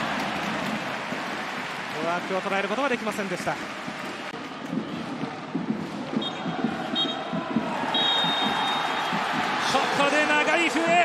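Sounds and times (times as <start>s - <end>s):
stadium crowd noise: 0.0s - 11.0s
referee's whistle blasts: 7.9s - 9.1s.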